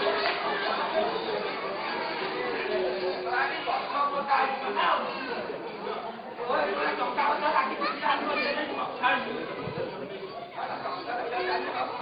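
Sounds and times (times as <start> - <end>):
men speaking in a hall: 0.0 - 12.0.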